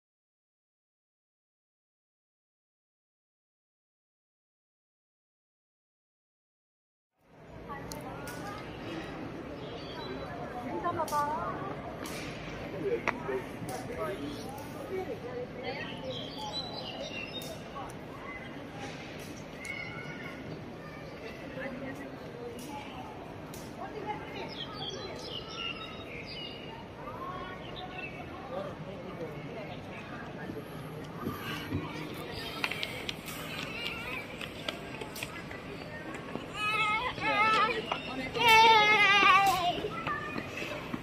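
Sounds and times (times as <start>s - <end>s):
outdoor background noise: 7.2s - 41.0s.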